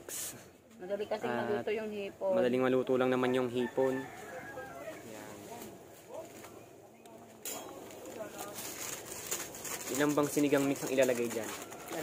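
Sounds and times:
faint background talk: 3.1 - 12.0.

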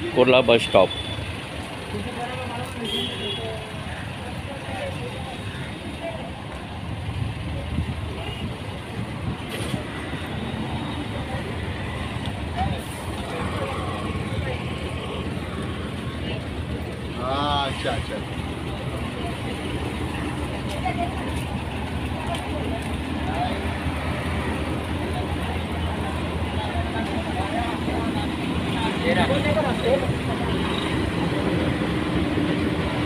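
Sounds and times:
bus engines rumbling: 0.0 - 33.0
road traffic: 0.0 - 33.0.

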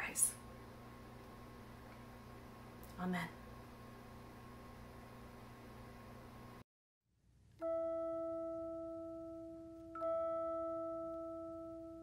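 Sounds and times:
bell-like note ringing: 7.6 - 12.0.

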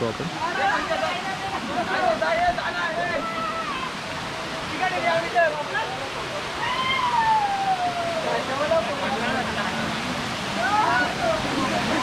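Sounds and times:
stream running over stones: 0.0 - 12.0.

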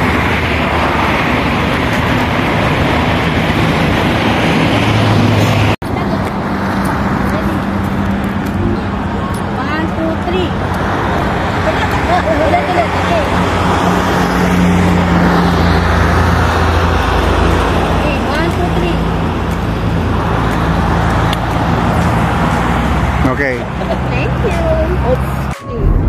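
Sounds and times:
road traffic noise: 0.0 - 26.0.

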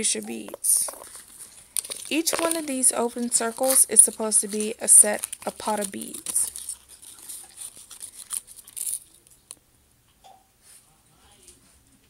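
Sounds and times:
plastic blister tray crinkling: 0.1 - 9.6.

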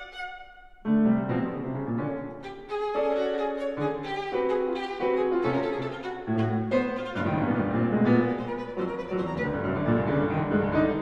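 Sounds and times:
violin and piano playing: 0.0 - 11.0.

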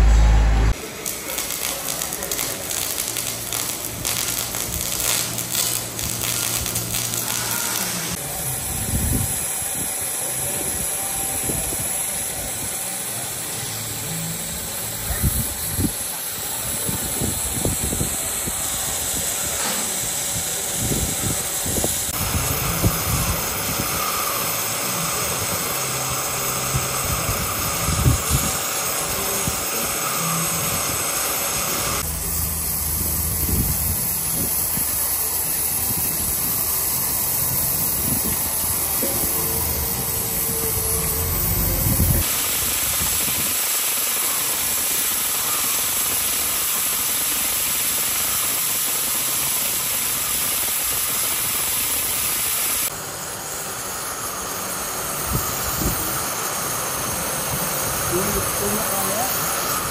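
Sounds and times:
arc welding: 0.7 - 59.9
cutting torch flame hissing: 0.7 - 59.9.

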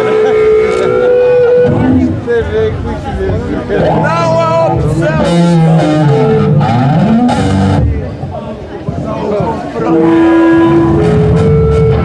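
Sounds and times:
guitar amplifier feedback whine: 0.0 - 2.4, 3.8 - 7.9, 9.9 - 12.0.

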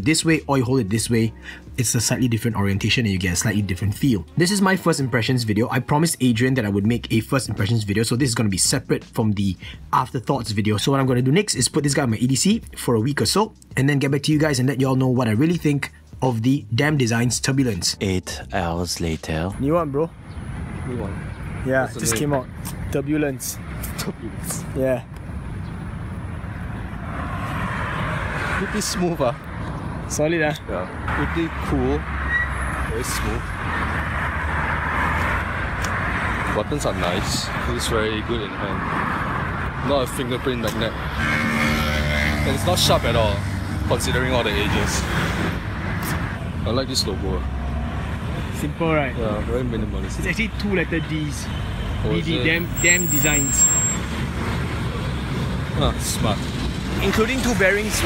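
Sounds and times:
low rumble of traffic: 0.0 - 58.0
vehicle passing: 17.6 - 58.0.

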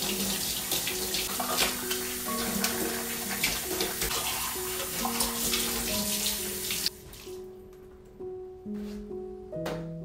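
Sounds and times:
tap water running into sink: 0.0 - 7.3.

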